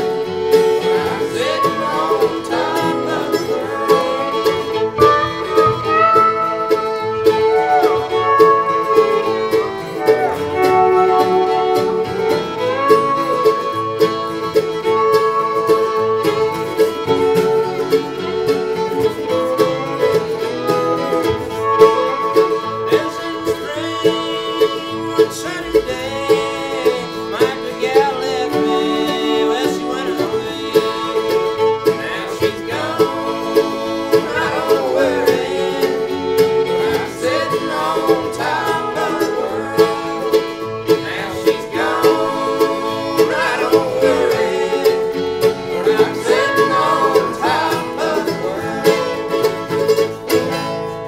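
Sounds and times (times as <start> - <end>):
acoustic guitars strumming: 0.0 - 51.0
fiddle sliding between notes: 0.0 - 51.0
mandolin: 0.0 - 51.0
pedal steel guitar: 0.0 - 51.0.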